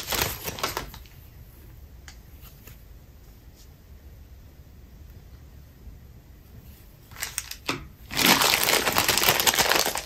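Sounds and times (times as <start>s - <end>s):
packaging crackling: 0.0s - 1.2s, 7.1s - 10.0s.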